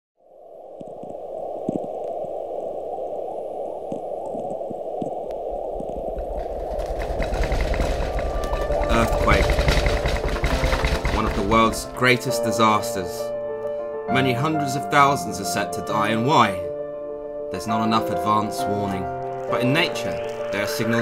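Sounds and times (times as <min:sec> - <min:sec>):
static hiss with crackles: 0:00.2 - 0:08.8
deep rumble: 0:00.3 - 0:12.3.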